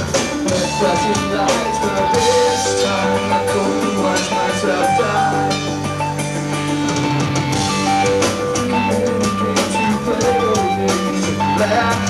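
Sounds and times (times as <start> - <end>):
drum and cymbal hits: 0.0 - 12.0
electric guitars sustained chords: 0.0 - 12.0.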